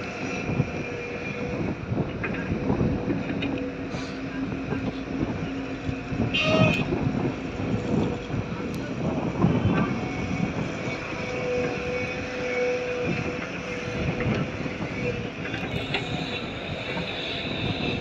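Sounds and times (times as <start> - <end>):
heavy diesel engines running: 0.0 - 18.0.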